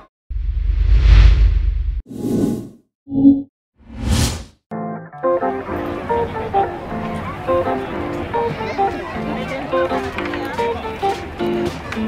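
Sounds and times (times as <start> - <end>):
whoosh: 0.3 - 2.7, 3.9 - 4.6.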